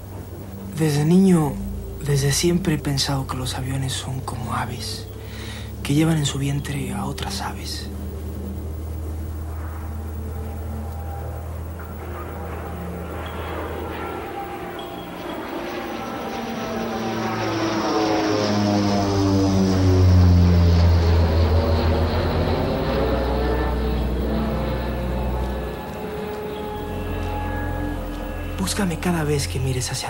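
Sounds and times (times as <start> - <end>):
airplane engine drone: 0.0 - 30.0.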